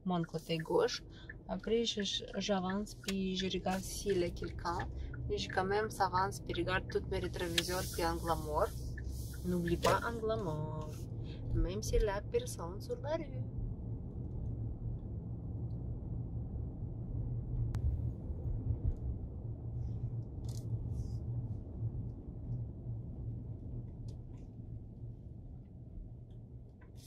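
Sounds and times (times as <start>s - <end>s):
car cabin rumble: 0.0s - 27.0s.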